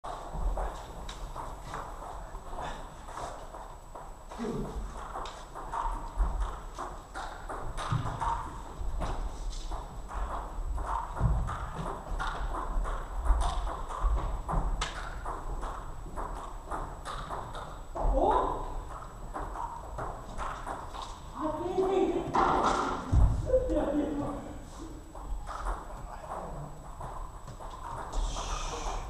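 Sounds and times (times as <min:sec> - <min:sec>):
feet stamping on wooden floor: 0:00.1 - 0:22.0.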